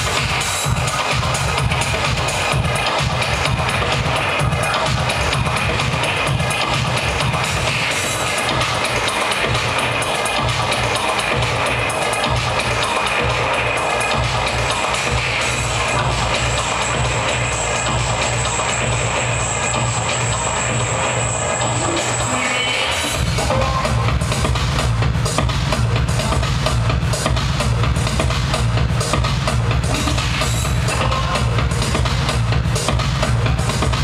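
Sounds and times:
electronic dance music: 0.0s - 34.0s
high held tone: 17.2s - 23.6s.

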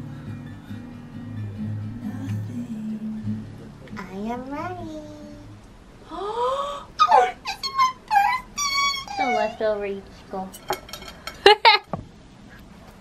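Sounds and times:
women's high-pitched vocal sounds: 4.1s - 10.0s
excited squeals: 6.2s - 9.8s
women laughing: 11.4s - 11.9s.

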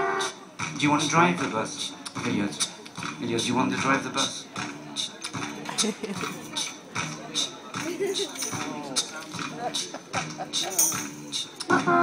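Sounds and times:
man's voice: 0.8s - 11.6s.

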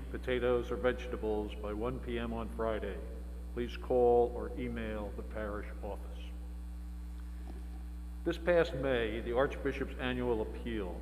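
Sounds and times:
low electrical mains hum: 0.0s - 11.0s.

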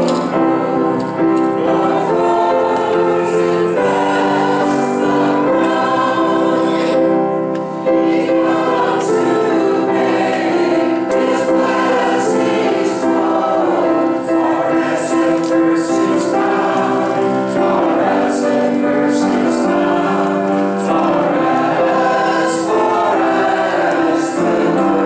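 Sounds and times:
congregation singing a hymn: 0.0s - 25.0s.

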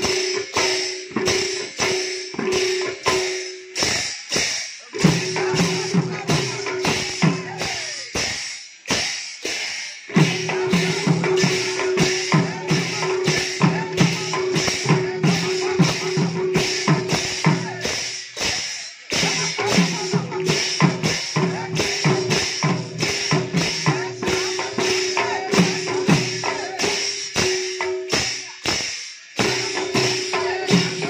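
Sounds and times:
hand drums playing fast rhythm: 0.0s - 31.0s.

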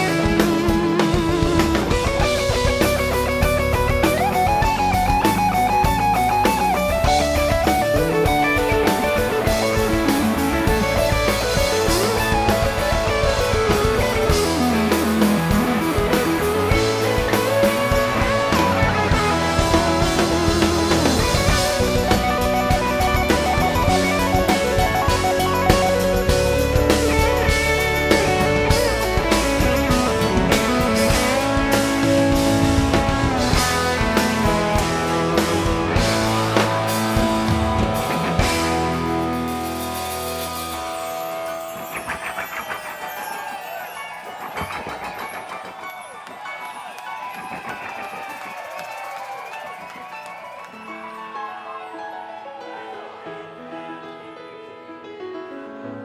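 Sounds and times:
drum kit: 0.0s - 50.6s
electric guitar: 0.0s - 51.5s
rock band playing softly: 0.0s - 51.6s
crowd shouting and cheering: 0.0s - 54.5s.

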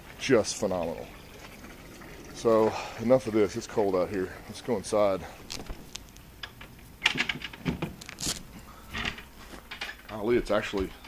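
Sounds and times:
vinyl enclosure rustling and scraping: 5.4s - 6.2s, 7.0s - 10.0s.

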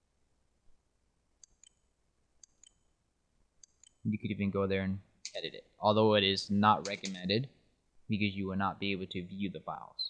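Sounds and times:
computer mouse clicks: 1.4s - 2.9s, 3.6s - 4.0s, 6.8s - 7.2s.

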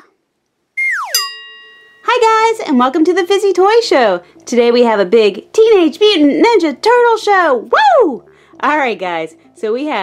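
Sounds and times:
falling whistle-like glide: 0.8s - 1.3s
bell-like ding: 1.1s - 2.1s.

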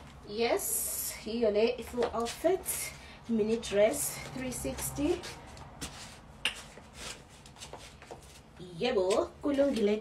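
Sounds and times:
woman speaking: 0.2s - 5.4s, 8.6s - 10.0s
rustling and light taps: 1.8s - 2.5s, 3.4s - 10.0s.

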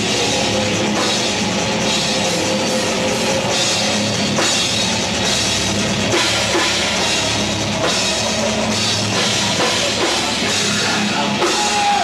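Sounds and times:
bass drum: 0.0s - 12.0s
heavy metal band playing: 0.0s - 12.0s.

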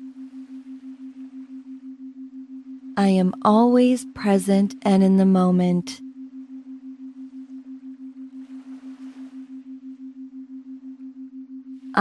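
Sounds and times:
low pulsing pure tone: 0.0s - 12.0s.

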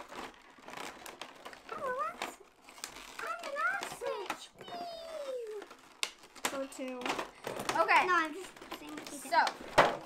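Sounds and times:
plastic packaging click: 0.0s - 10.0s
girl speaking: 1.7s - 2.4s, 3.2s - 5.7s, 6.5s - 9.7s.

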